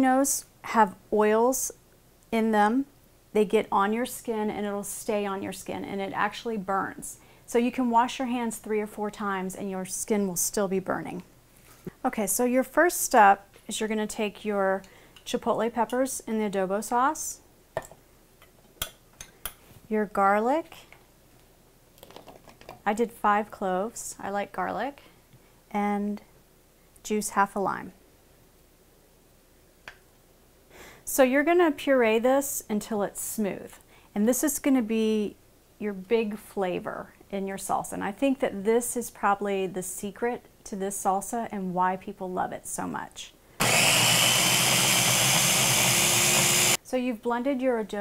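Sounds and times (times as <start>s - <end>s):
electric food chopper motor running: 43.6s - 46.8s.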